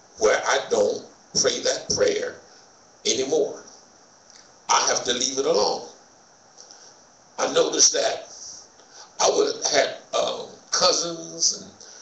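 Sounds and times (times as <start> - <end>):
man speaking: 0.2 - 2.5, 3.1 - 3.7, 4.7 - 6.0, 7.4 - 11.8.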